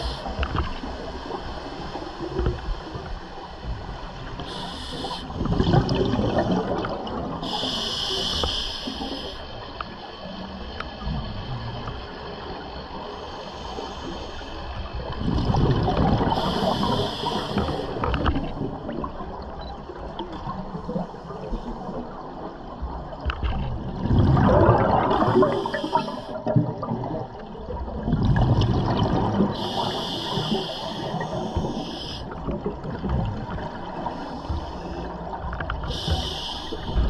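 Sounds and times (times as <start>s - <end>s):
diver's regulator breathing underwater: 4.4s - 6.8s, 7.4s - 9.4s, 15.3s - 18.3s, 24.4s - 26.6s, 28.5s - 32.4s, 35.8s - 37.0s
demand valve hissing: 4.5s - 5.3s, 7.4s - 9.4s, 35.9s - 37.0s
bubbles bursting with gurgle: 5.4s - 7.4s, 15.2s - 17.0s, 23.4s - 29.6s.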